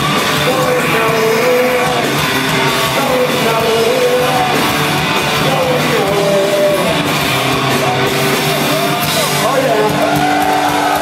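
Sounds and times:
high pitched sliding guitar line: 0.0 - 11.0
live rock band playing: 0.0 - 11.0.

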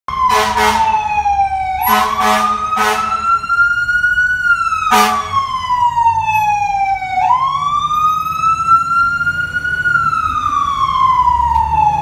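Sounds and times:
siren wailing: 0.1 - 12.0.

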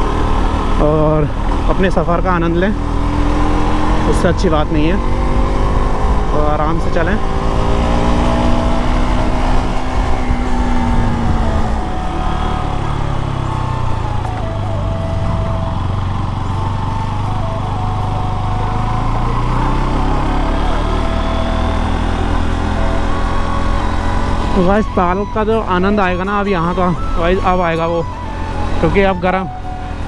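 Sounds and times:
motorcycle engine: 0.0 - 30.0
wind and road noise: 0.0 - 30.0.

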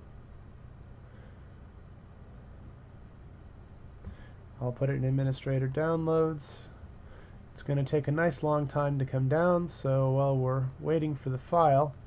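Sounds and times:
faint background hum and hiss: 0.0 - 12.0.

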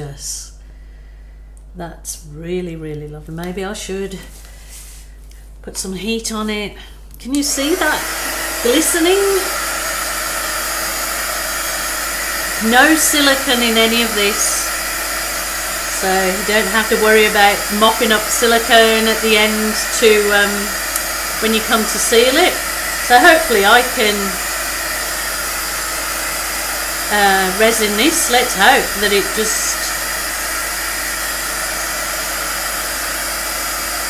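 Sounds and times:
heat gun whirring and hissing: 7.4 - 34.0.

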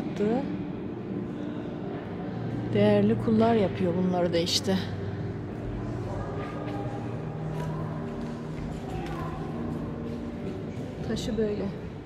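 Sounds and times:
distant murmur of voices: 4.7 - 12.0.

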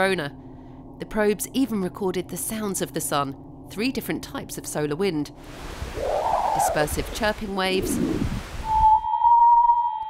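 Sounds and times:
hissing rush: 5.6 - 8.8
steady high tone: 8.6 - 10.0.

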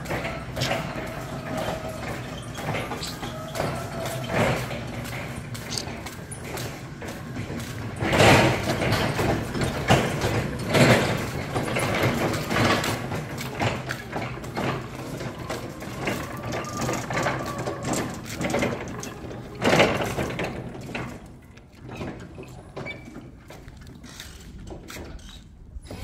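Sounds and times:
forklift rattling and clunking: 0.0 - 26.0.

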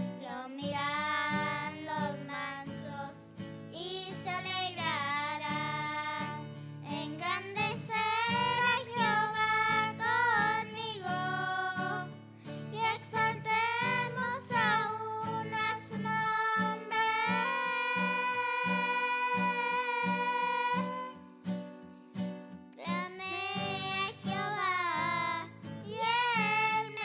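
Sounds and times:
strummed acoustic guitar: 0.0 - 27.0
girls singing: 0.1 - 21.2, 22.8 - 27.0.

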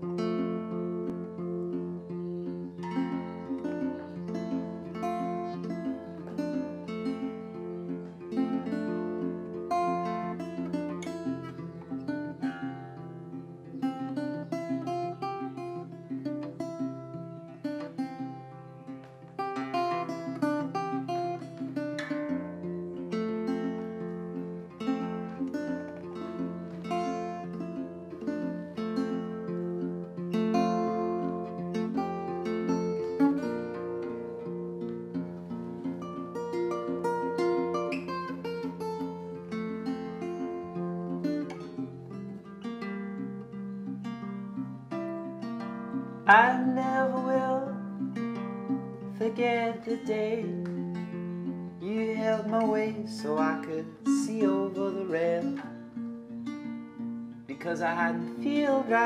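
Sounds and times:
acoustic guitar picking: 0.0 - 59.0.

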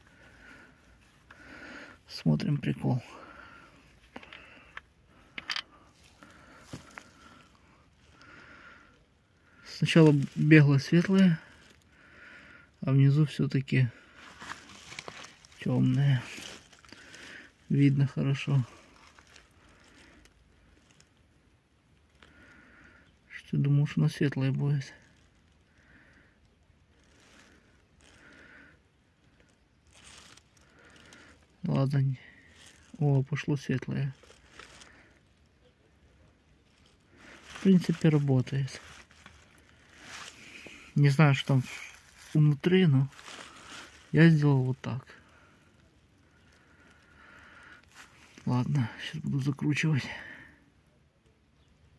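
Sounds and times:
soft handling clicks and rustles: 3.8 - 7.6, 14.2 - 17.1.

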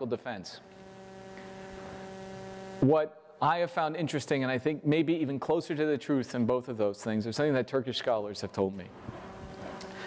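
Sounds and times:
electrical mains hum: 0.0 - 4.4, 8.4 - 10.0
man talking: 2.8 - 8.9.

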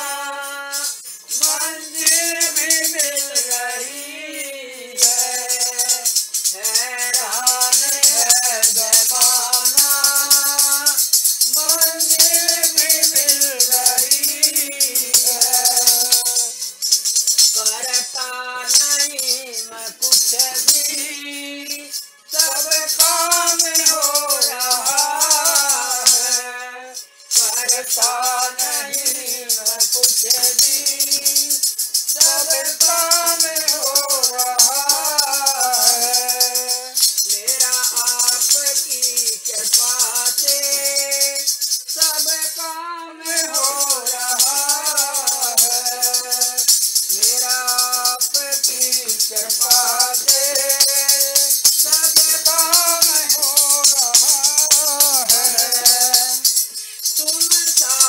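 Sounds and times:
woman singing devotional song: 0.0 - 16.7, 17.4 - 58.0
rhythmic shaken rattle: 0.0 - 58.0.

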